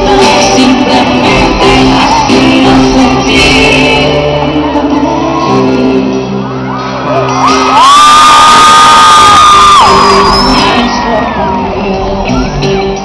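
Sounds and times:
live pop band playing: 0:00.0 - 0:13.0
audience cheering and whooping: 0:04.5 - 0:12.8
long high cry: 0:07.4 - 0:11.1.

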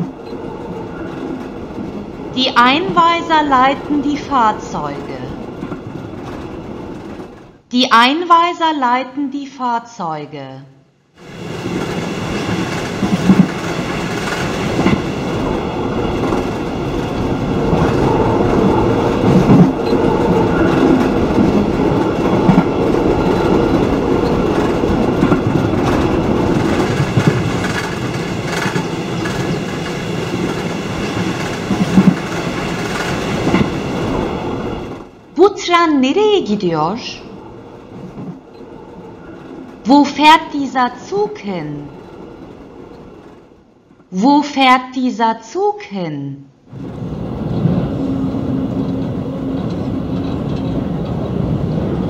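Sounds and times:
train rumbling along track: 0:00.0 - 0:07.7, 0:11.2 - 0:44.1, 0:46.6 - 0:52.0.

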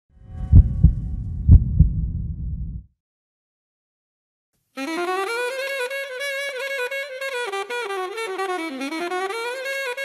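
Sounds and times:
low rumble: 0:00.1 - 0:02.9
heartbeat-like double thumps: 0:00.3 - 0:02.9.

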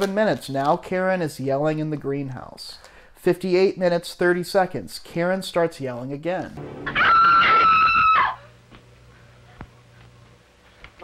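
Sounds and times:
woman screaming: 0:06.8 - 0:08.6.

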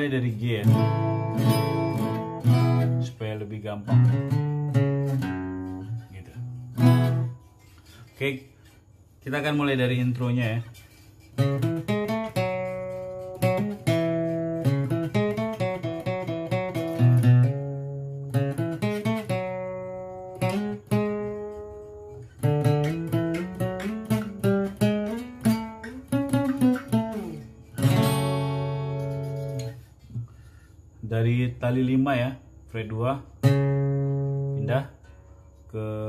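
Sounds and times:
acoustic guitar picking and strumming: 0:00.0 - 0:36.0.

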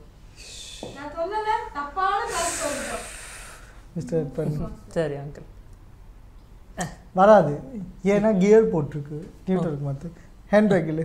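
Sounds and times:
person breathy hissing: 0:00.3 - 0:01.0, 0:02.2 - 0:03.9.

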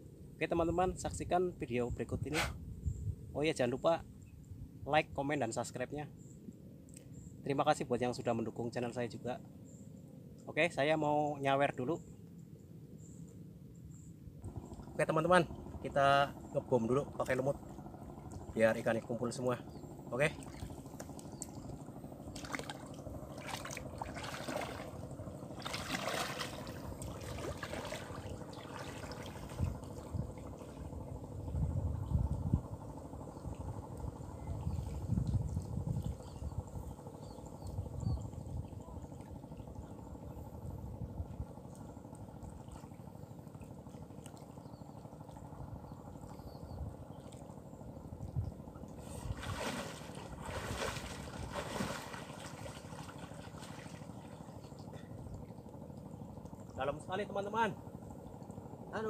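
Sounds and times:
water splashing from wading: 0:19.8 - 0:31.2, 0:41.7 - 0:46.4, 0:47.1 - 0:56.8.

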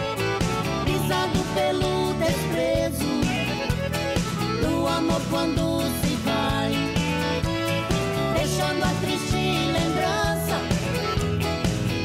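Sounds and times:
country band accompaniment: 0:00.0 - 0:12.0
man singing into a microphone: 0:00.9 - 0:03.7.

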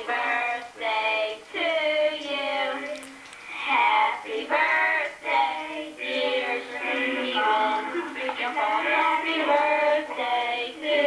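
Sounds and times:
children singing through tv speaker: 0:00.0 - 0:11.0.

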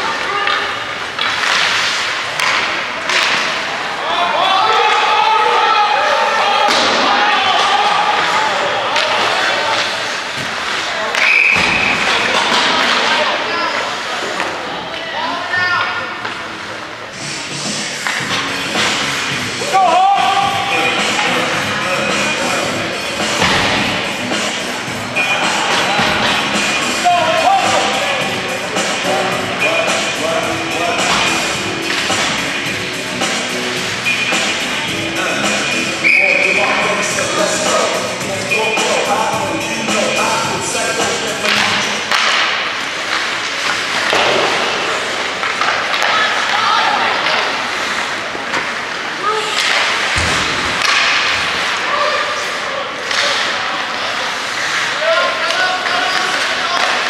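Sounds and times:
people shouting: 0:03.8 - 0:10.1, 0:19.6 - 0:21.3, 0:25.0 - 0:28.4
background music: 0:17.1 - 0:42.6
referee whistle blast: 0:36.0 - 0:36.6
thuds against rink boards: 0:43.9 - 0:46.5, 0:49.6 - 0:51.7.

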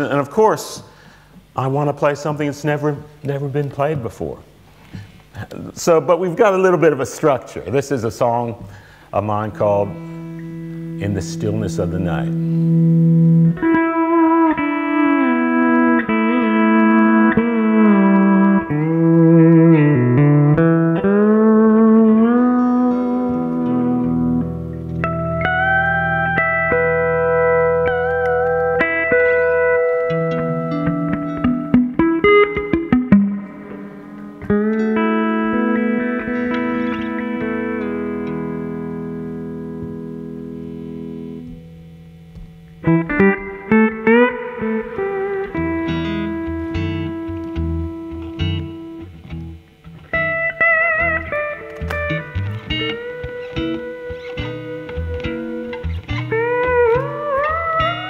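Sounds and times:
electric guitar accompanying: 0:00.0 - 0:58.0
pedal steel guitar sliding chords: 0:09.1 - 0:58.0.

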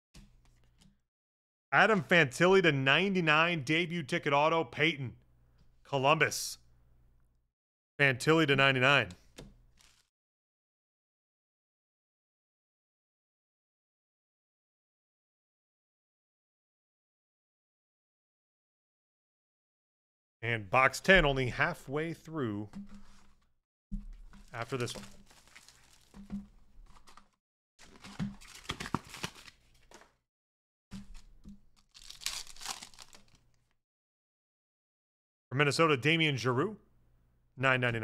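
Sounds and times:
card pack wrappers rustling: 0:09.6 - 0:10.1, 0:24.2 - 0:30.2, 0:31.0 - 0:33.7.

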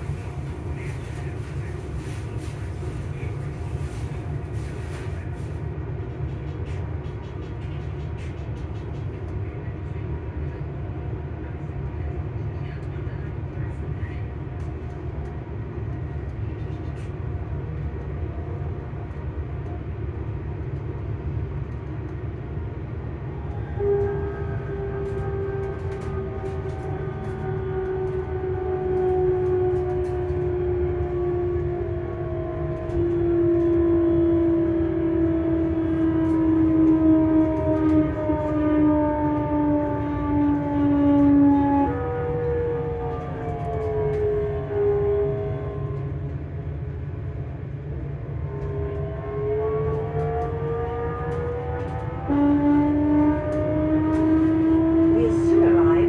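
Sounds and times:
train running gear rumble: 0:00.0 - 0:56.0.

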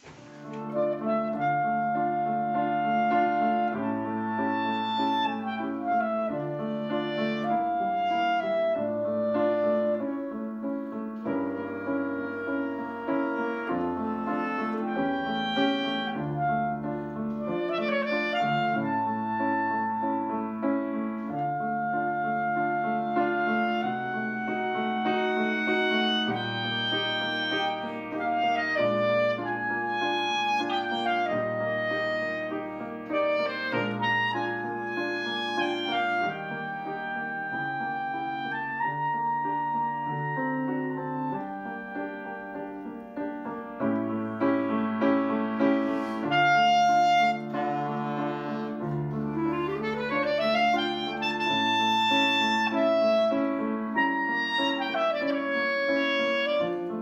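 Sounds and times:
clarinet melody: 0:00.0 - 0:57.0
piano chords: 0:00.0 - 0:57.0.

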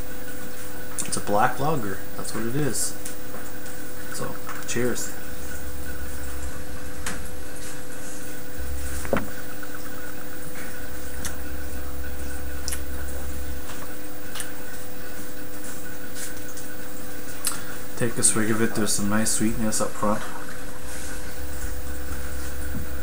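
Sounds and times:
electrical hum: 0:00.0 - 0:23.0.

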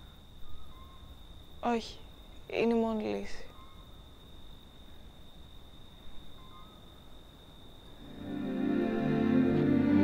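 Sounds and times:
faint high-pitched whine: 0:00.0 - 0:10.0.

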